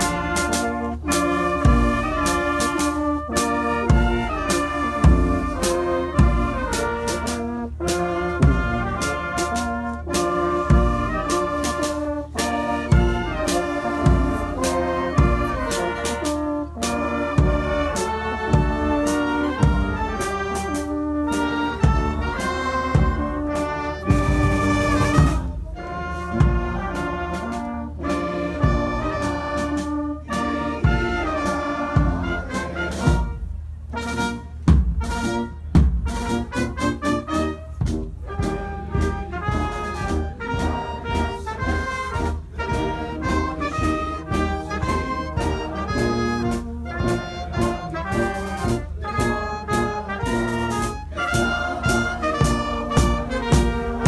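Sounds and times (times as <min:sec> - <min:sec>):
brass band playing: 0:00.0 - 0:54.0
drum beats: 0:00.0 - 0:54.0.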